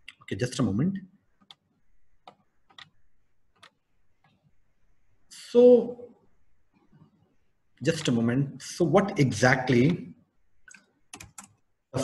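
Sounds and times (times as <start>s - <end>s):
computer mouse clicks: 1.4s - 4.5s, 10.6s - 11.6s.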